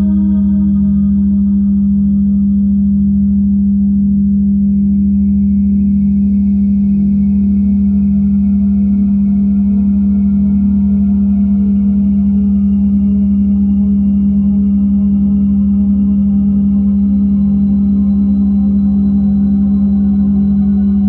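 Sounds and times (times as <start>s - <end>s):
steady low drone tone: 0.0s - 21.0s.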